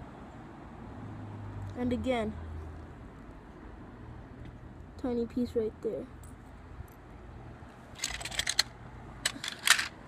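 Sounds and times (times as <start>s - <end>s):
small hard objects clicking: 8.0s - 10.0s.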